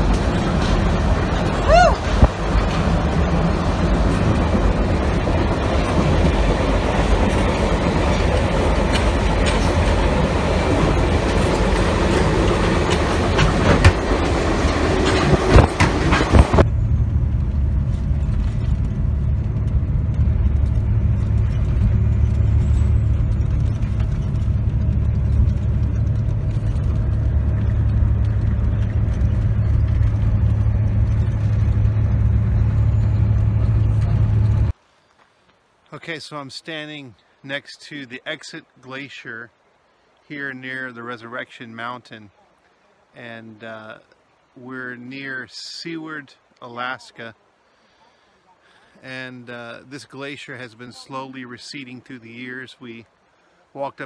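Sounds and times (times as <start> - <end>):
rail clicks: 0.0 - 16.7
train running rattle: 0.0 - 34.8.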